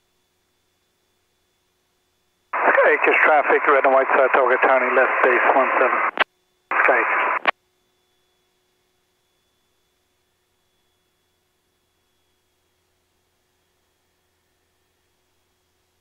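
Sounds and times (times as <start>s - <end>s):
radio speech: 2.6s - 7.5s
radio transmitter click: 4.1s - 7.5s.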